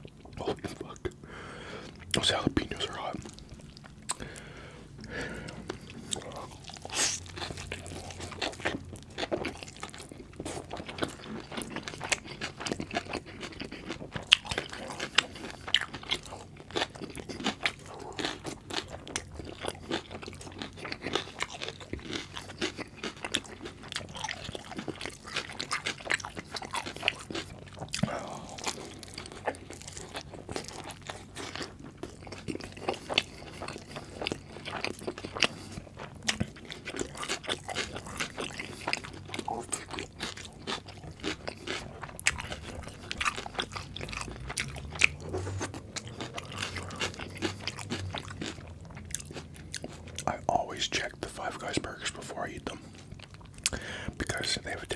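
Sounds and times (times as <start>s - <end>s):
person chewing food: 0.0s - 54.9s.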